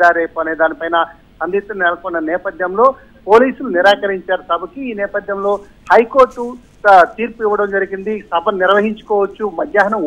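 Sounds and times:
man speaking over telephone: 0:00.0 - 0:10.0.

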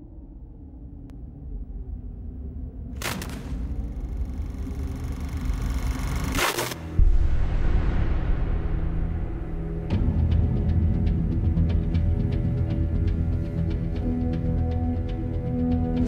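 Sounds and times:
low rumbling drone: 0:00.0 - 0:16.0
heavy low boom: 0:07.0 - 0:10.4.

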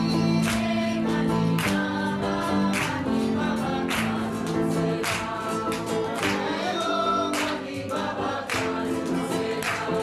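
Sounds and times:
voices singing in chorus: 0:00.0 - 0:10.0.

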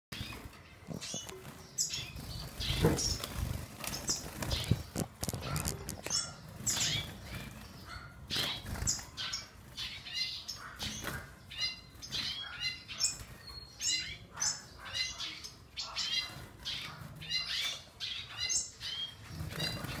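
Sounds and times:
birds chirping: 0:00.1 - 0:20.0
birds flapping wings: 0:02.2 - 0:07.8.

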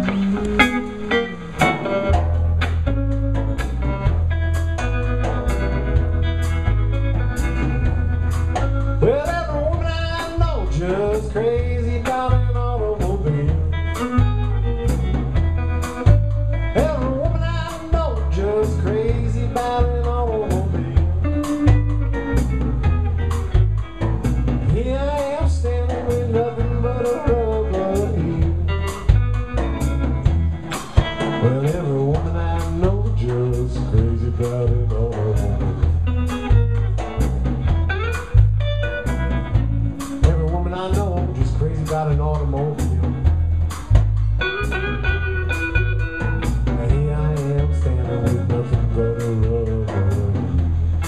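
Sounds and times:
bass guitar: 0:00.0 - 0:51.0
drum kit steady beat: 0:00.0 - 0:51.0
electric guitar lead: 0:00.0 - 0:51.0.

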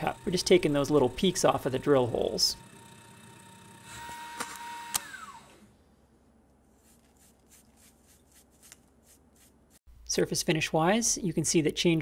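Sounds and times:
milling machine motor whining: 0:00.0 - 0:05.7.

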